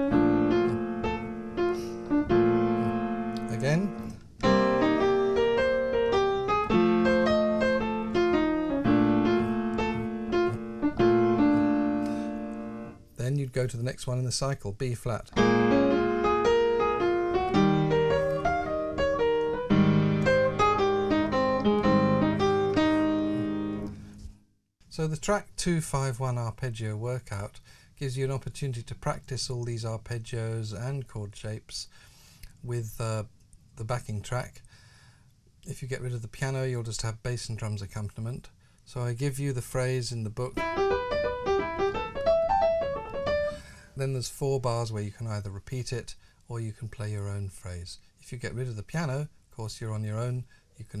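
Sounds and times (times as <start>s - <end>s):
jazz piano: 0.0s - 13.1s, 15.3s - 24.4s, 40.4s - 43.8s.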